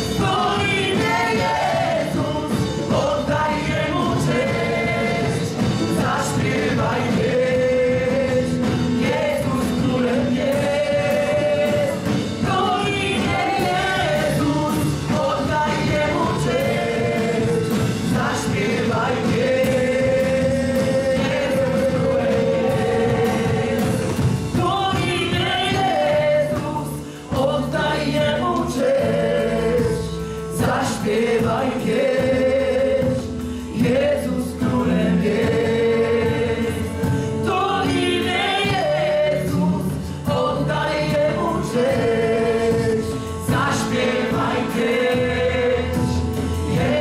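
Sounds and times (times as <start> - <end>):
keyboard guitar and drums: 0.0 - 47.0
voices singing along: 0.0 - 47.0.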